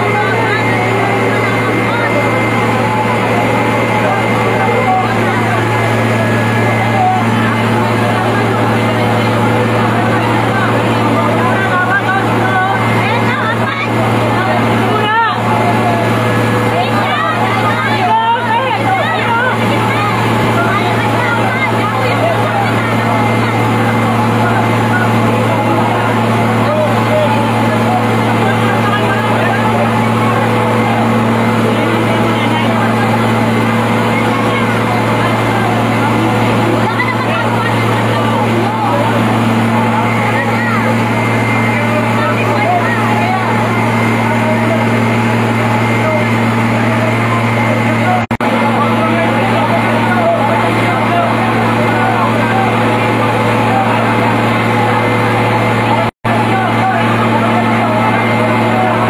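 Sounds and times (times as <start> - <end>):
crowd shouting and chatter: 0.0 - 59.0
fire truck engine humming: 0.0 - 59.0.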